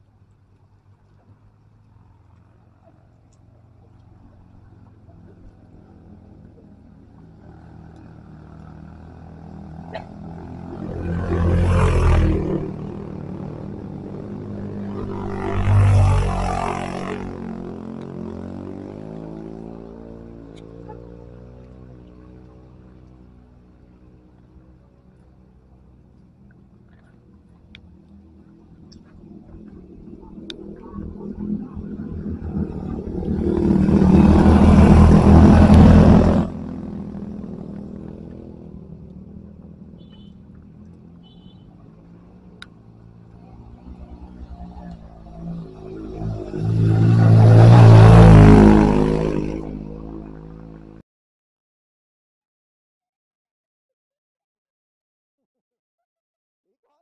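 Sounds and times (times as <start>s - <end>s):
motor scooters passing: 0.8s - 51.0s.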